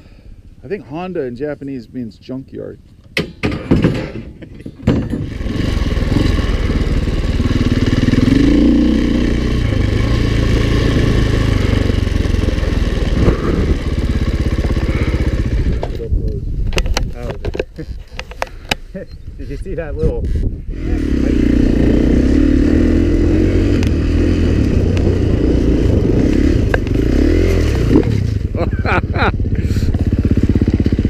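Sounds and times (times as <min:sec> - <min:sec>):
knocks and clatter: 0:03.2 - 0:06.5
dirt bike engine running: 0:05.2 - 0:16.1, 0:20.3 - 0:31.0.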